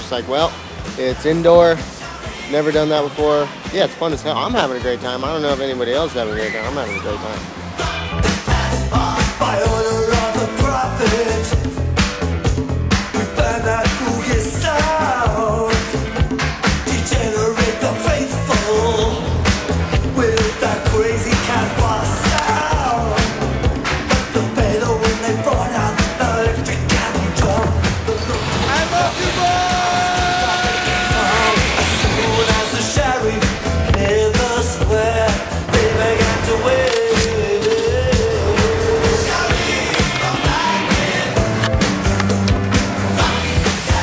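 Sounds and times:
music soundtrack: 0.0 - 44.0
snowboard scraping over snow: 28.2 - 33.8.

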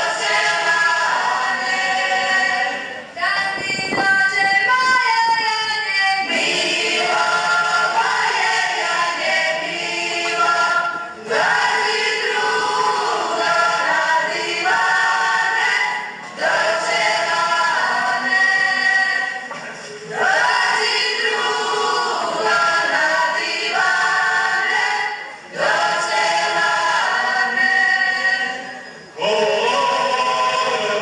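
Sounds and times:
women's voices singing in chorus: 0.0 - 31.0.

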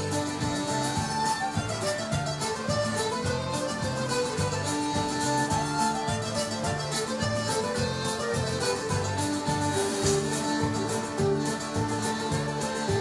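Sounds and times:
live folk band playing: 0.0 - 13.0.

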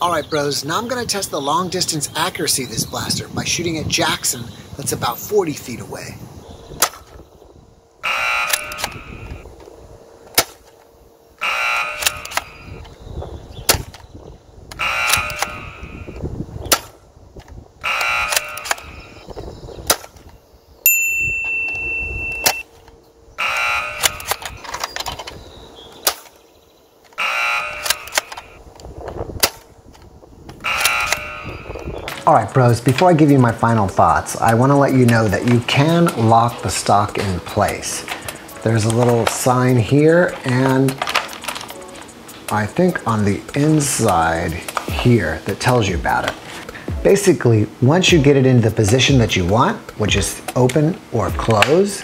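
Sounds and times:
wind rumble on microphone: 2.2 - 8.0, 8.7 - 10.3, 12.2 - 17.9, 18.7 - 25.9, 28.6 - 32.8
toy blaster firing: 8.0 - 9.4, 11.4 - 12.7, 14.7 - 17.0, 17.8 - 19.2, 23.4 - 24.6, 27.2 - 28.6, 30.6 - 31.7.

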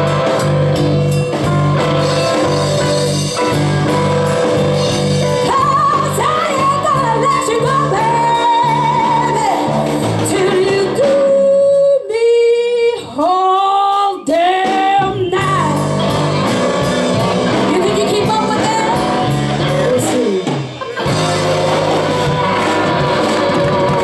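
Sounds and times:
blues band playing: 0.0 - 12.4, 13.0 - 24.0
woman singing: 5.4 - 16.1, 17.5 - 19.0.

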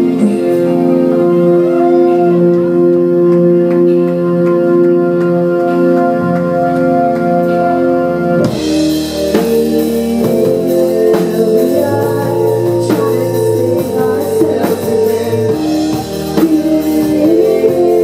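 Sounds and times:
electric organ chords: 0.0 - 18.0
drum kit with cymbal crash: 8.5 - 18.0.

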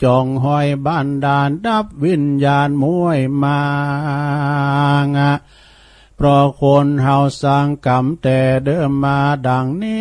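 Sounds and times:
monk chanting: 0.0 - 5.4, 6.2 - 10.0.

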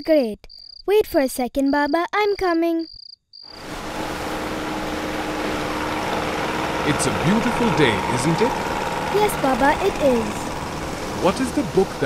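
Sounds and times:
surf washing on beach: 3.6 - 12.0.

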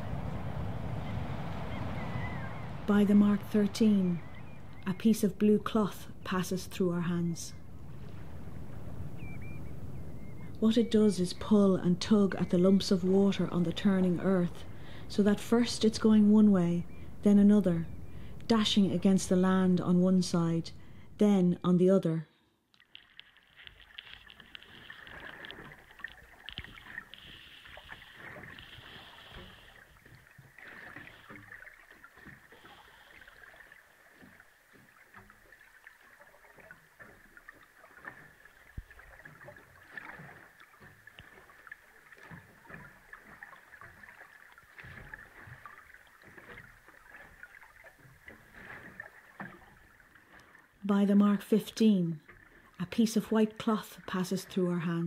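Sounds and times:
sea water lapping: 0.0 - 21.2, 22.7 - 55.0
small irregular clicks: 22.7 - 33.2, 34.1 - 50.6.

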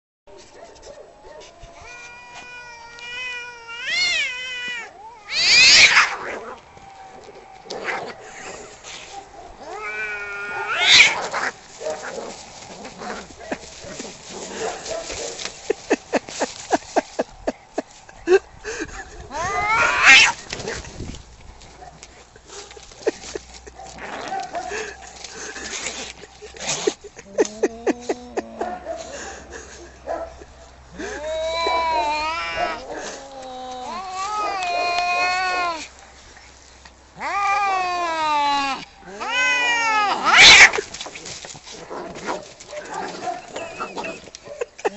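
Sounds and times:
cat yowling: 1.7 - 6.2, 9.6 - 11.4, 19.3 - 20.4, 31.2 - 35.9, 37.2 - 40.7
cats screeching: 1.7 - 6.3, 9.6 - 11.6, 19.3 - 20.7, 31.1 - 35.9, 37.2 - 41.1
cats scuffling: 10.3 - 19.2, 19.8 - 27.6, 40.1 - 44.9.

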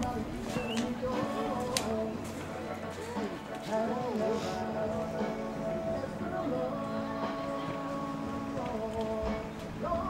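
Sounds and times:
indistinct background voices: 0.0 - 10.0.

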